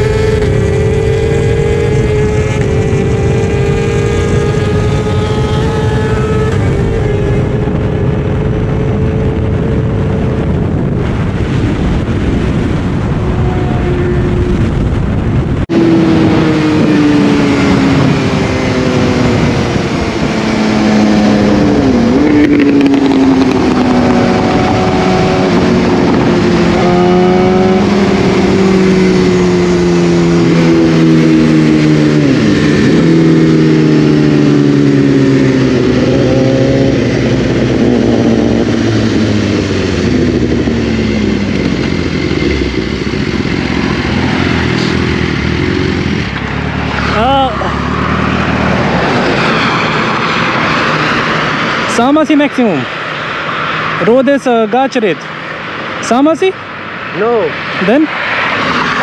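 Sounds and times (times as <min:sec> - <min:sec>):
motorcycle engine slowing: 0:00.0 - 0:59.0
wind rush: 0:00.0 - 0:59.0.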